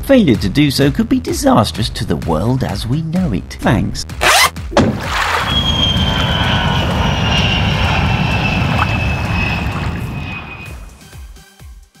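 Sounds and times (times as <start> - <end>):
high whistle dropping in pitch: 5.4 - 10.9
loud steady rumbling: 5.5 - 11.0.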